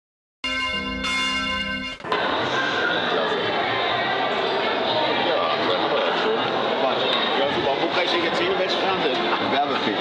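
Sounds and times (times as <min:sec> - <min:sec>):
church bells ringing: 0:00.4 - 0:02.1.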